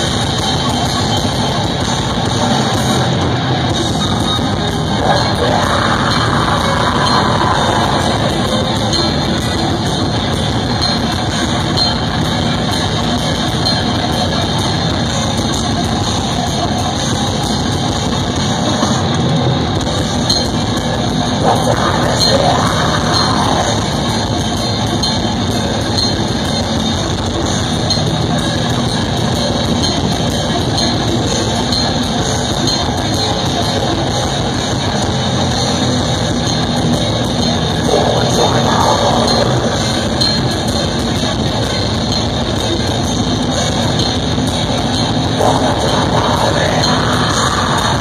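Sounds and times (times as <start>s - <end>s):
death metal band playing live: 0.0s - 48.0s.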